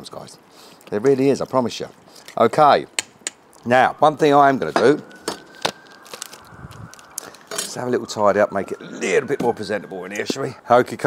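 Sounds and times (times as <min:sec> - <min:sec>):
plastic pack handling: 0:05.0 - 0:07.7.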